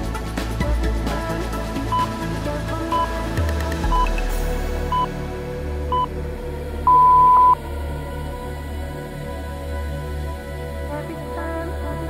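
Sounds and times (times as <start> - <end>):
electronic background music: 0.0 - 12.0
interval timer beeps: 6.9 - 7.6.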